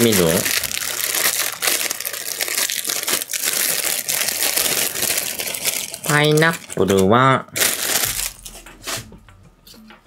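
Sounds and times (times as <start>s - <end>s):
plastic packaging crinkling: 0.0s - 9.0s.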